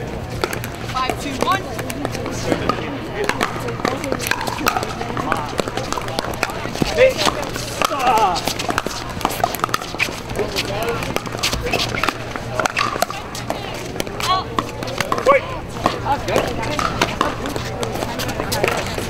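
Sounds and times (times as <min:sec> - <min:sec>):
distant voices: 0:00.0 - 0:19.0
paddles hitting plastic balls: 0:00.4 - 0:17.6.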